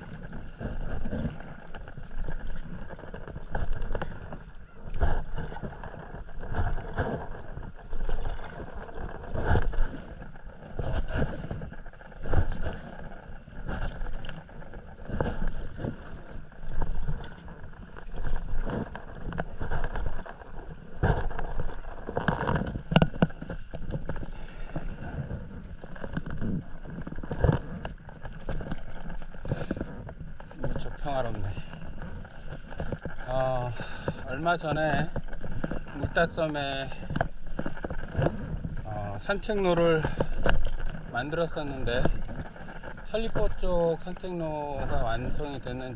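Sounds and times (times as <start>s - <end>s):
wind rumble on microphone: 0.0s - 24.2s
paddle splashing through water: 0.0s - 45.9s.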